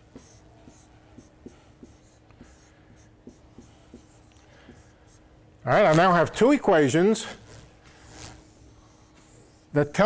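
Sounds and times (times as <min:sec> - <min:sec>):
chalk tapping and scratching: 0:00.0 - 0:05.3, 0:07.9 - 0:10.0.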